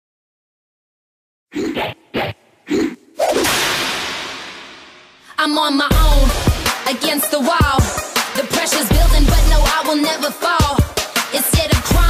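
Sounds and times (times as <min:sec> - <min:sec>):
punchy sound hits: 0:03.2 - 0:05.3.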